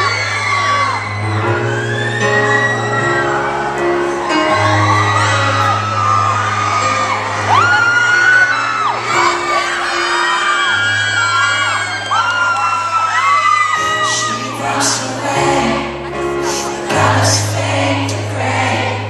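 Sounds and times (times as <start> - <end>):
audience screaming and whooping: 0.0 - 19.0
piano ballad: 0.0 - 19.0.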